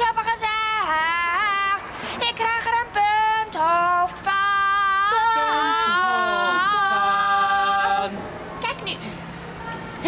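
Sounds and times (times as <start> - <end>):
women singing a wailing chant: 0.0 - 9.0.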